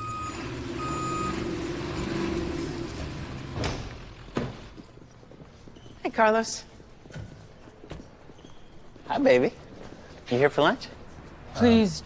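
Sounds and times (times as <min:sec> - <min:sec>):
reversing alarm beeps: 0:00.0 - 0:02.4.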